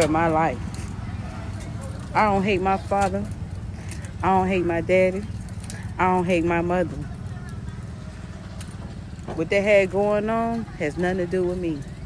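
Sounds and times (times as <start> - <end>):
low fluttering outdoor rumble: 0.0 - 12.0.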